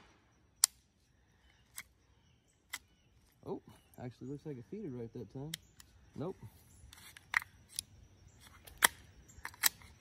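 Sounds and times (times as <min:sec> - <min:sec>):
pistol action metallic clicks: 0:07.2 - 0:10.0.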